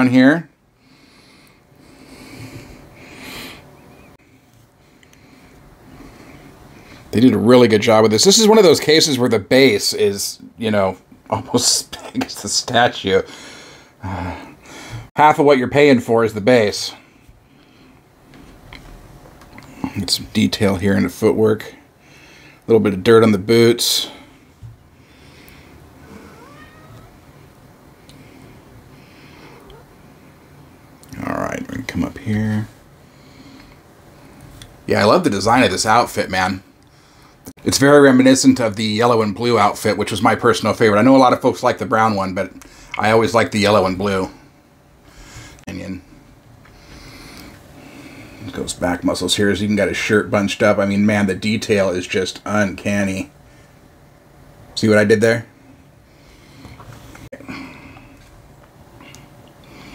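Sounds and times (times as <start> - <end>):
low room hum: 0.0 - 59.9
man breathing: 0.7 - 7.1, 13.2 - 15.1, 21.8 - 22.7, 24.0 - 26.4, 33.0 - 34.4, 36.9 - 37.5, 42.6 - 43.0, 45.0 - 48.4, 56.0 - 58.3, 59.0 - 59.9
animal cry rising in pitch: 26.0 - 27.4.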